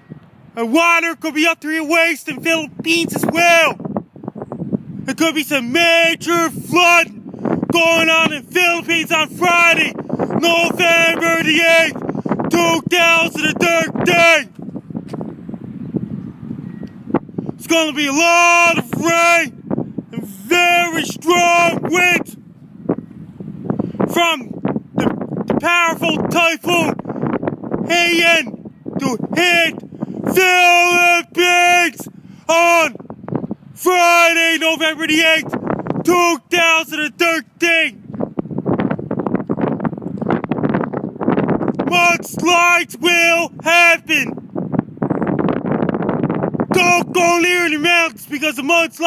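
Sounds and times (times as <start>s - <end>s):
wind buffeting phone microphone: 0.0s - 49.0s.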